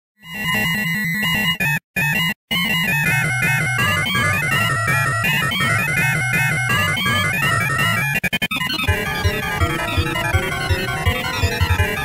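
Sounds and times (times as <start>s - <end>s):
synthesized alarm tones pulsing: 3.0s - 12.0s.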